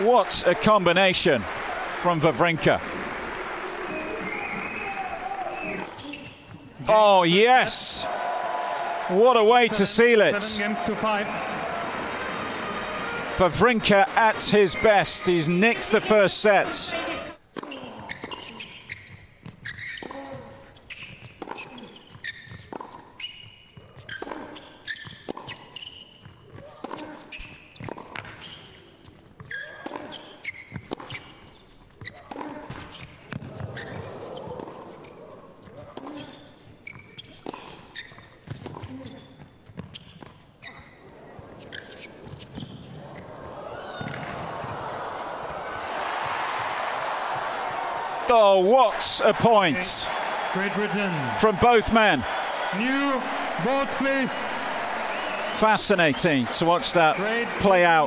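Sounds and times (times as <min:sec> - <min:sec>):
crowd cheering and applauding: 0:00.0 - 0:06.0, 0:06.9 - 0:17.3, 0:43.4 - 0:58.0
tennis racket strokes: 0:19.6 - 0:26.0, 0:33.7 - 0:40.5, 0:41.5 - 0:43.4.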